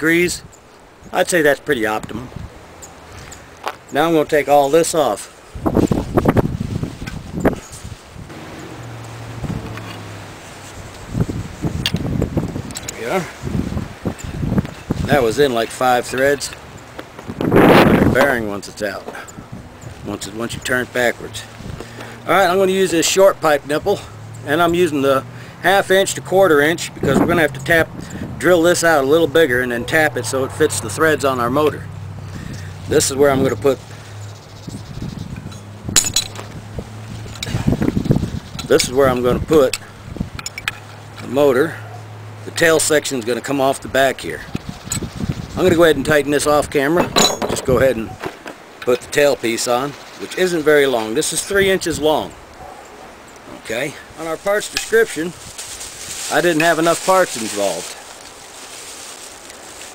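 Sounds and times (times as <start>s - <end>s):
handling and rustling noise: 2.4s - 19.2s, 54.2s - 59.9s
metal pipe fittings clinking: 35.4s - 36.4s, 47.0s - 47.8s.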